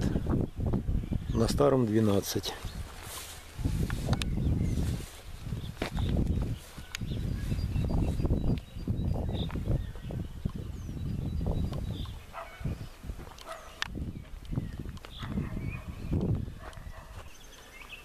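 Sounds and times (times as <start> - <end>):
low rumbles on microphone: 0.0 - 1.7, 2.6 - 17.3
birds chirping: 0.0 - 18.0
footsteps on dirt path: 2.5 - 18.0.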